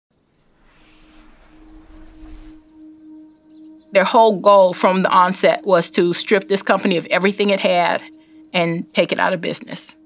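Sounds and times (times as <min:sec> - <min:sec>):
faint higher notes: 0:00.4 - 0:10.0.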